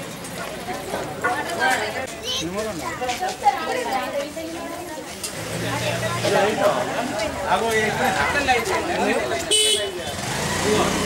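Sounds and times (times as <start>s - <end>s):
people talking: 0.0s - 11.0s
vehicle horn honk: 9.5s - 10.2s.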